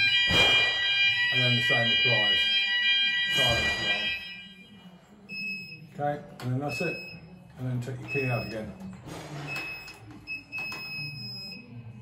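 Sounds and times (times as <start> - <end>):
short buzzer beep: 0.0 - 4.7
fire alarm sounders: 0.0 - 5.8, 6.7 - 7.3, 8.1 - 8.8, 9.5 - 11.7.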